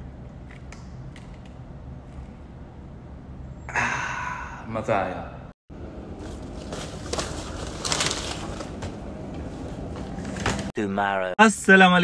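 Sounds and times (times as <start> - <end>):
steady low hum: 0.0 - 10.7.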